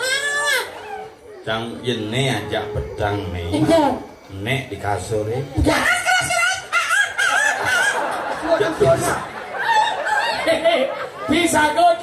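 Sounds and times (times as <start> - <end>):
high drawn-out vocal cry: 0.0 - 3.1, 5.6 - 8.3.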